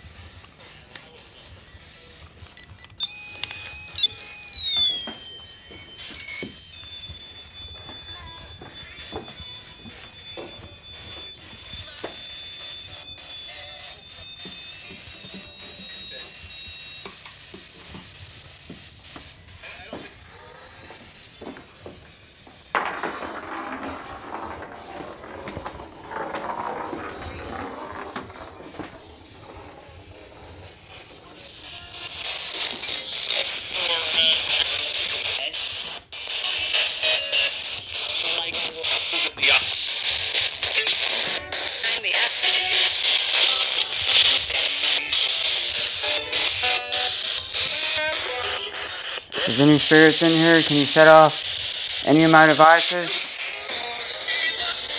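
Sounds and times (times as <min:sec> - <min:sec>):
radio static: 0:24.0 - 0:46.2, 0:47.1 - 0:54.9
choppy speech snatches: 0:52.0 - 0:53.2.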